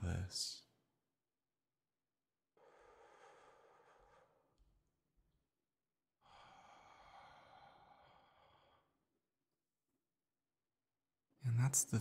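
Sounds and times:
man breathing out softly: 6.2 - 9.1.

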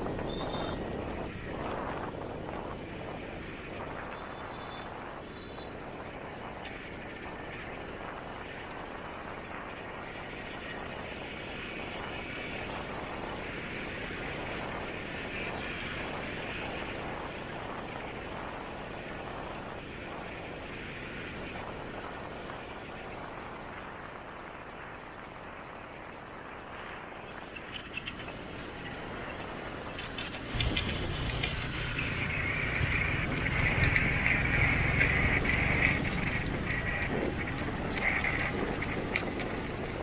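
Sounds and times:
motor traffic rushing: 0.0 - 7.9, 26.6 - 40.0.

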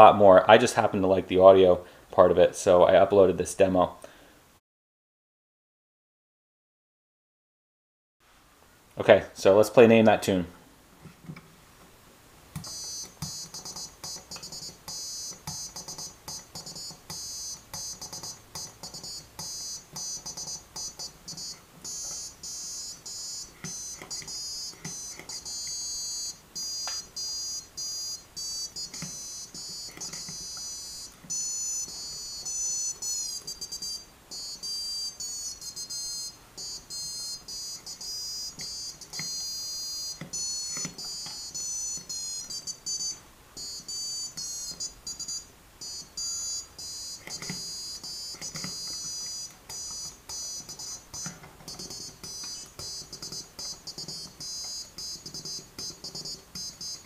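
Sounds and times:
piezo buzzer beeping tune: 12.6 - 57.0.

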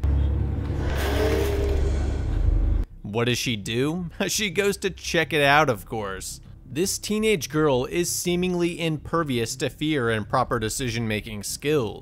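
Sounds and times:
deep low rumble: 0.0 - 3.0.

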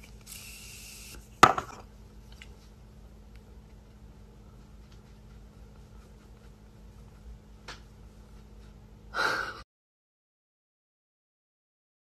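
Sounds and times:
person gasping: 9.1 - 9.6.

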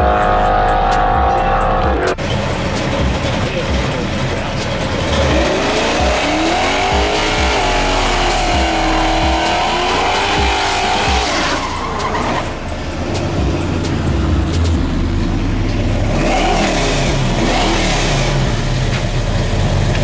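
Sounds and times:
engine revving: 0.0 - 20.0
second engine revving: 0.0 - 20.0.

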